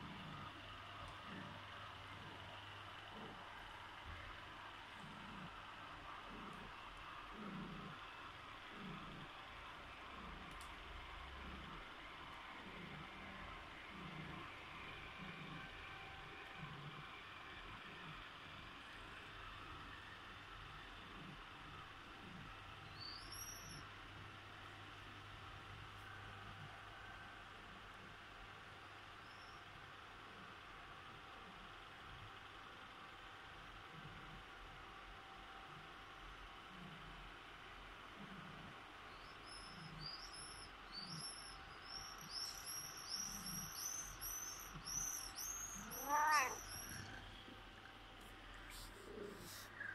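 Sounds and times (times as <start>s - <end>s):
faint high-pitched chirps: 22.8s - 23.9s, 29.2s - 29.7s, 39.1s - 47.4s
cat meowing: 45.7s - 47.2s.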